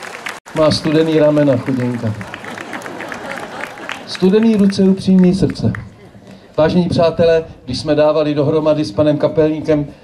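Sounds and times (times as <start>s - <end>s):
audience applause: 0.0s - 5.9s
speech: 0.6s - 2.2s, 4.1s - 5.8s, 6.6s - 10.0s.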